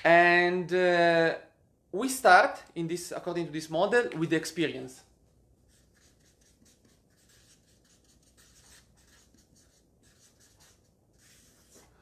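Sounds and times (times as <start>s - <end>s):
marker writing on paper: 5.7s - 12.0s.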